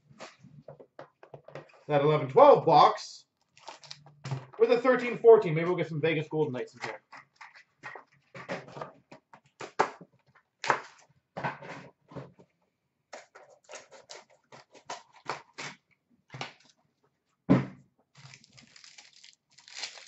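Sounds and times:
packaging crinkling and tearing: 3.4s - 4.0s, 18.2s - 20.0s.

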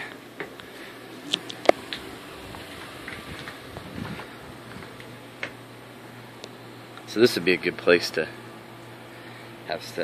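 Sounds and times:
wind on microphone: 3.1s - 4.6s.

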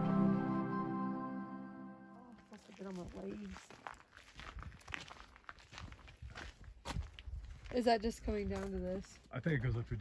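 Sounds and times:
footsteps on gravel trail: 2.3s - 10.0s.

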